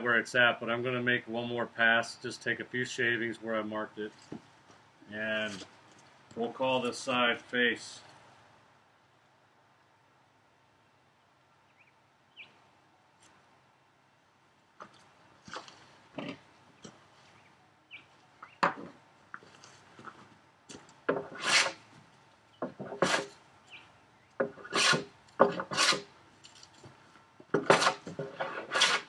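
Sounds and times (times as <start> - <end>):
hand plane shaving wood: 21.2 - 21.8, 22.8 - 23.3, 24.5 - 26.1, 27.6 - 29.0.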